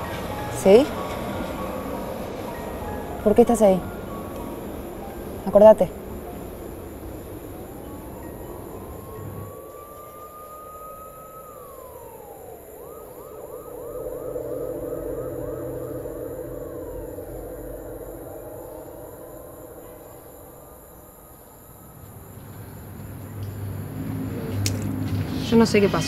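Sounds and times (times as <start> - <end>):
emergency vehicle siren: 0.0 - 26.0.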